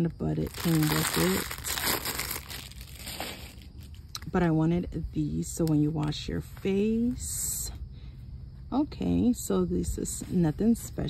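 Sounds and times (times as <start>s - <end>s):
plastic packaging crinkling: 0.4s - 4.1s.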